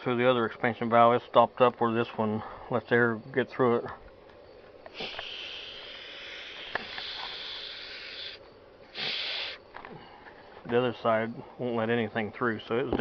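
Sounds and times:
air hissing through valve: 4.8 - 9.8.

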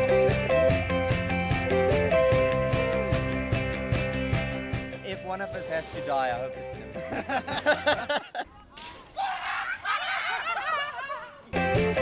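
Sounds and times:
people laughing and shrieking: 7.1 - 11.6.

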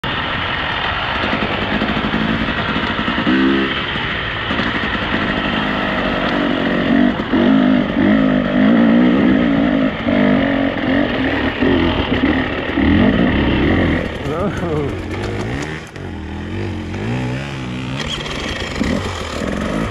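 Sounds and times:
dirt bike engine revving: 0.9 - 19.9.

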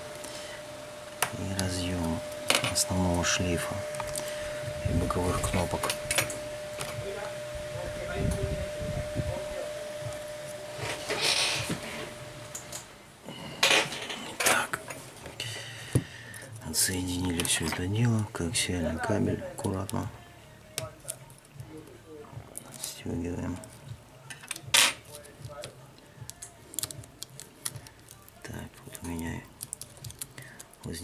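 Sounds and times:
thin steady hum: 0.0 - 22.5.

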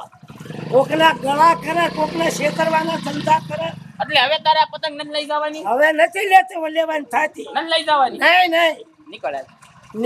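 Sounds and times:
motorcycle engine running: 0.0 - 6.0, 6.6 - 10.0
man talking loudly: 0.8 - 8.8.

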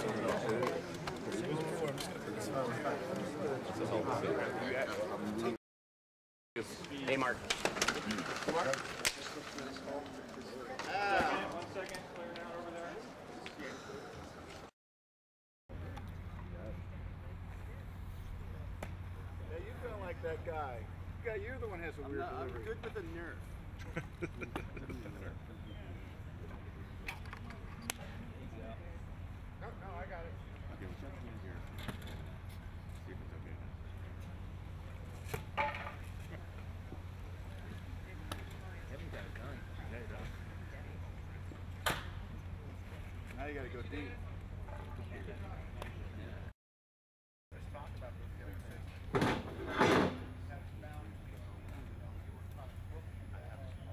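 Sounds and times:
distant murmur of people talking: 15.7 - 46.5, 47.6 - 53.9.

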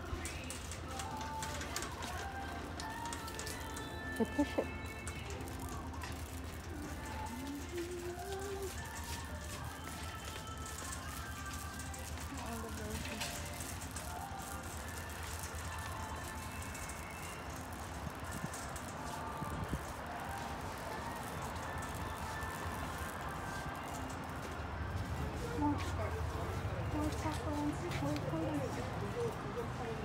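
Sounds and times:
indistinct voices: 0.0 - 16.3
faint background music: 0.0 - 30.0.

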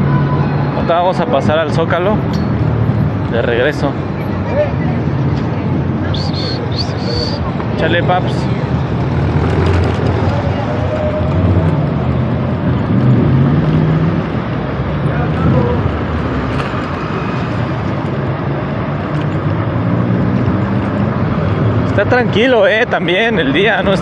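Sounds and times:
nearby car engines running: 0.0 - 24.0
road traffic rush: 0.0 - 24.0.

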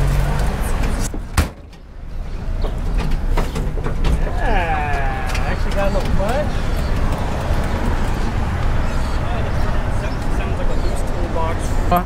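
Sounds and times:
engine clicks and rattles: 2.6 - 11.4.

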